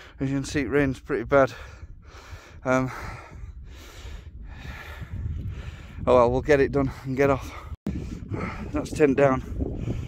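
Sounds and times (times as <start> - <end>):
wind rumble on microphone: 0.0 - 10.0
man breathing noisily: 1.6 - 6.0, 9.6 - 10.0.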